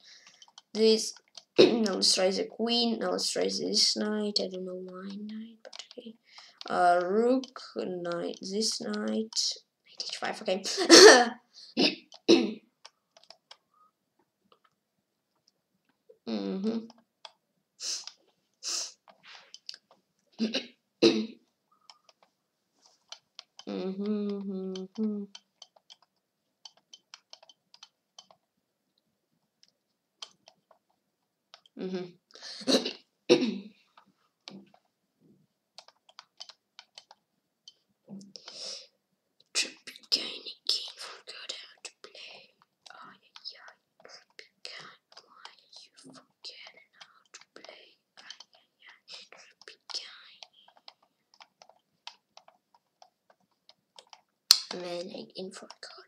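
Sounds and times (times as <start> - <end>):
boy whispering and muttering: 0.8 - 12.1, 16.1 - 17.0, 17.8 - 19.0, 23.6 - 25.3, 31.8 - 33.0, 39.5 - 50.8, 54.7 - 56.0.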